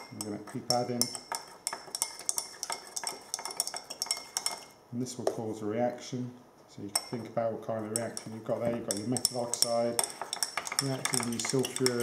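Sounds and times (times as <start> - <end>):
metal spatula scraping glass beaker: 0.0 - 4.8, 7.0 - 12.0.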